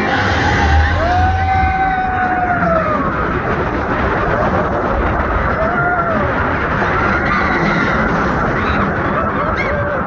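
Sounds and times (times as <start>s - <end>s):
rider screaming: 0.0s - 3.2s, 5.5s - 10.0s
roller coaster wind and track rumble: 0.0s - 10.0s.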